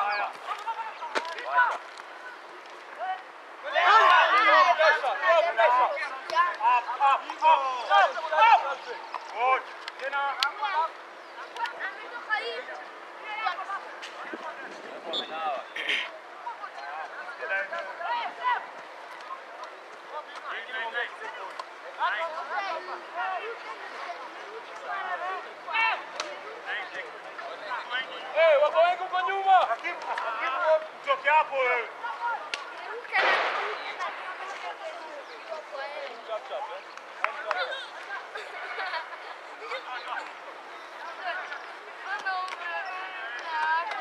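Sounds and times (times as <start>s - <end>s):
people shouting and calling out: 0.0s - 44.0s.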